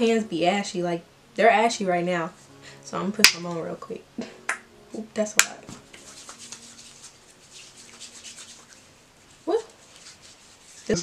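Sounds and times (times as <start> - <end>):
hands rubbing lotion: 5.4 - 11.0.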